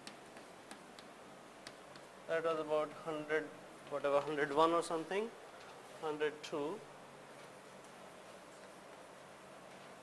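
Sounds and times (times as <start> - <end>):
chalk tapping on blackboard: 0.0 - 2.1.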